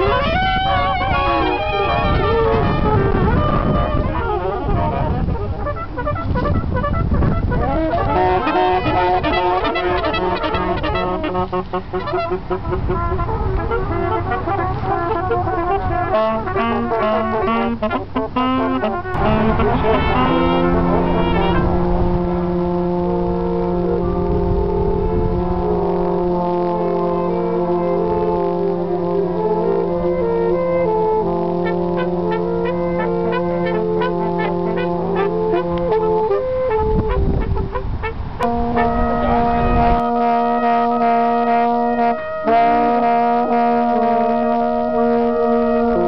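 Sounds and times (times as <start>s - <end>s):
brass instruments holding a chord: 0.0s - 46.0s
low microphone rumble: 0.0s - 46.0s
street band horns playing: 0.0s - 46.0s
low rumble: 19.0s - 26.8s.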